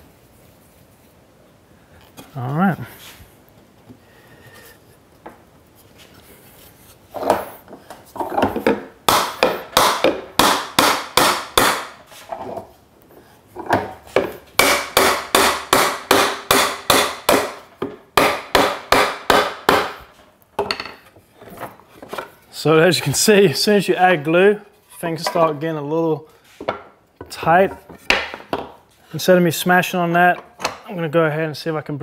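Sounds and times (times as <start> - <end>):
mallet striking wooden joint: 8.6 - 12.0, 13.7 - 20.1.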